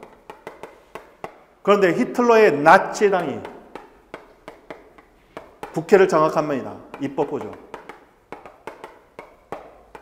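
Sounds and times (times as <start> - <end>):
chalk tapping on blackboard: 0.0 - 10.0.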